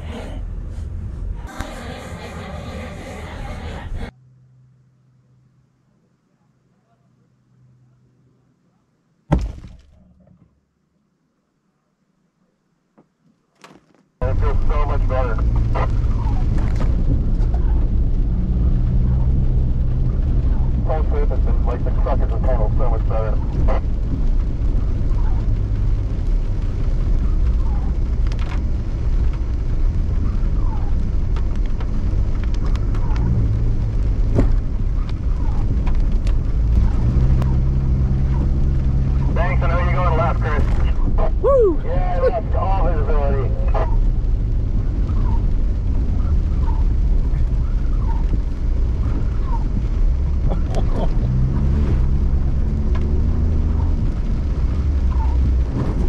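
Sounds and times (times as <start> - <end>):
engine and tyres rumbling: 0.0 - 4.2, 14.2 - 56.0
loud thump with low rumble: 9.3 - 10.0, 26.9 - 37.6
sharp clicks and knocks from road: 15.4 - 18.3, 23.5 - 39.4, 44.2 - 56.0.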